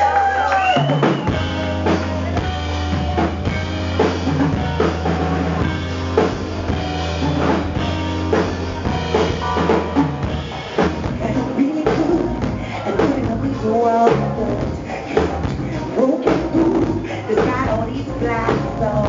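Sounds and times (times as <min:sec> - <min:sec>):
bass guitar line: 0:00.0 - 0:19.0
drum kit beat: 0:00.0 - 0:19.0.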